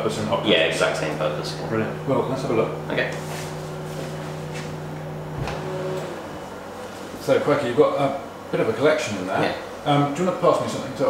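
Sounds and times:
fridge hum: 0:00.0 - 0:11.0.

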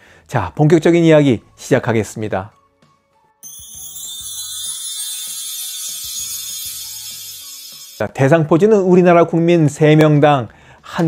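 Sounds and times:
bright shimmering hiss: 0:03.4 - 0:08.0.

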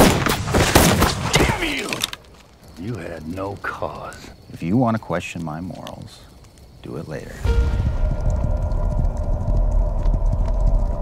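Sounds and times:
horses galloping hoofbeats: 0:08.3 - 0:11.0.

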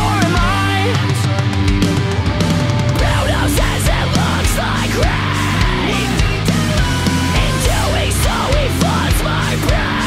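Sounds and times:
heavy rock band playing: 0:00.0 - 0:10.0.

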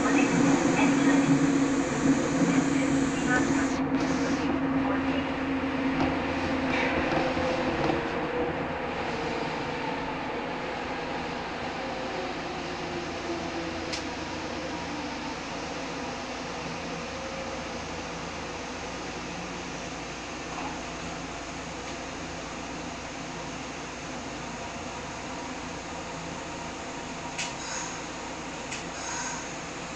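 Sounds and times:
train interior rumble: 0:00.0 - 0:29.9.

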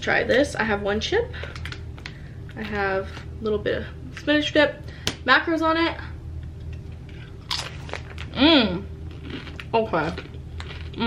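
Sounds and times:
chip crunching being chewed: 0:07.1 - 0:08.4, 0:09.1 - 0:11.0.

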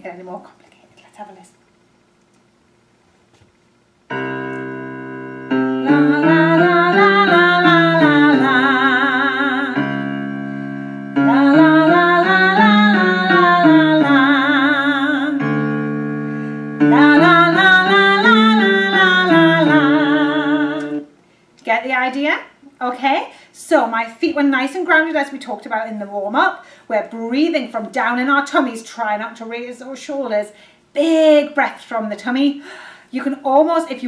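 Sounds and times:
piano playing scale exercise: 0:04.1 - 0:21.1
woman singing scale: 0:05.6 - 0:10.3, 0:11.0 - 0:16.0, 0:16.7 - 0:21.1.

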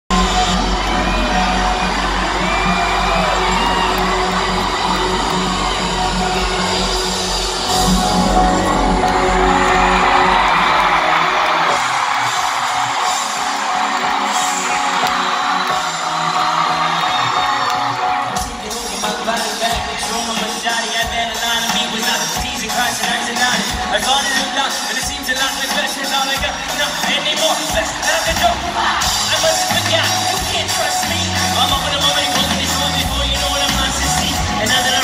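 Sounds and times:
crowd yelling and whooping: 0:00.1 - 0:21.0
live band music: 0:00.1 - 0:35.0.

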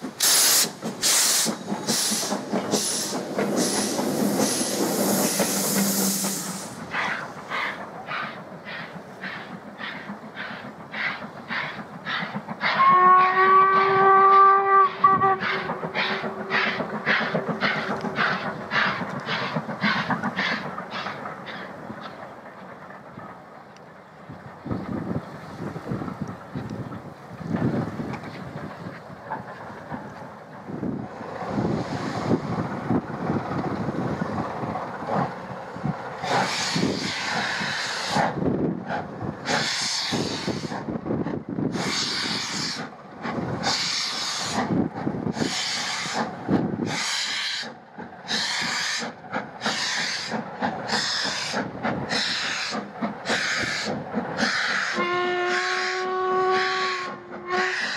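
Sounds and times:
steam hissing: 0:00.0 - 0:21.9, 0:30.8 - 0:57.9
steam locomotive exhaust beats: 0:00.0 - 0:57.9
train running rumble: 0:00.0 - 0:57.9.

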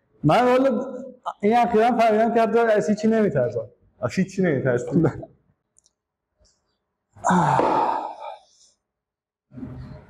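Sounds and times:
man sighing: 0:07.2 - 0:08.5.

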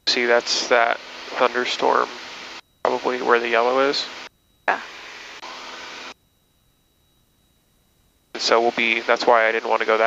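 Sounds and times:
aircraft cabin noise hiss: 0:00.1 - 0:06.2.

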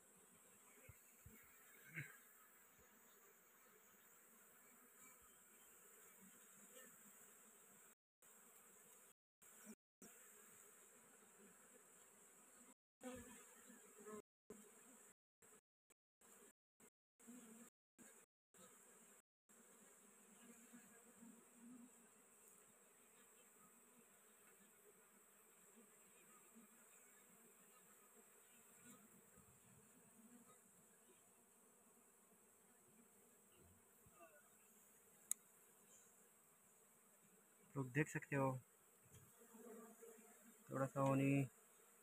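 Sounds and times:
honey bees buzzing: 0:00.2 - 0:15.6, 0:17.2 - 0:42.0.

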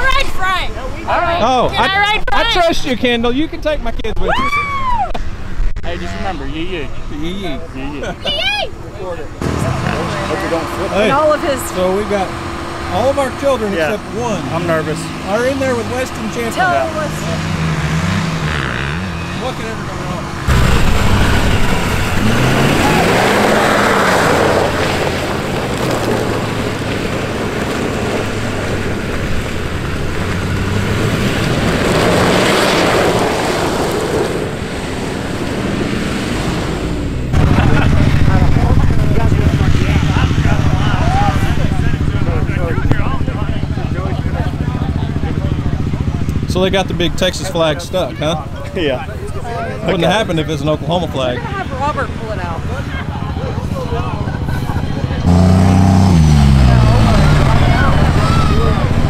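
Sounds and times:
voices: 0:00.0 - 0:05.1, 0:05.8 - 0:27.5, 0:37.4 - 0:59.0
truck engine revving: 0:09.1 - 0:59.0
tyres in mud: 0:20.5 - 0:42.2.

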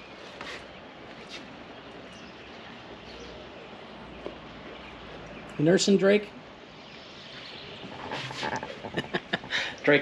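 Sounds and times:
bird chirps: 0:06.7 - 0:09.5.

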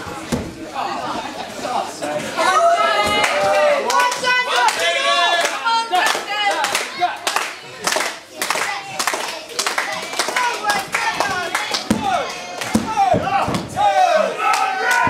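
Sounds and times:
spectators shouting: 0:02.4 - 0:07.2, 0:10.4 - 0:15.0
small crowd clapping: 0:03.0 - 0:15.0.

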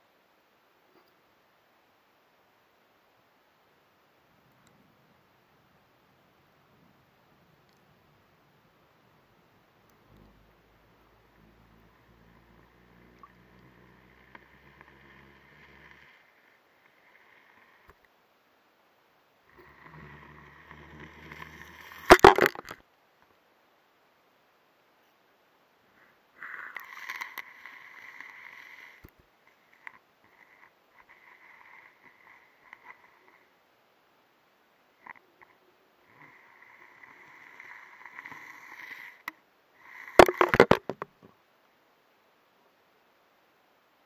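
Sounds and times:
faint low hum: 0:00.0 - 0:44.0.

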